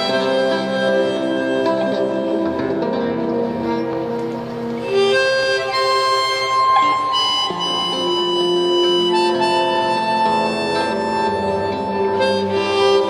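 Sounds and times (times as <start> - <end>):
harmonica playing slow melody: 0.0 - 13.0
nylon-string guitar accompaniment: 0.0 - 13.0.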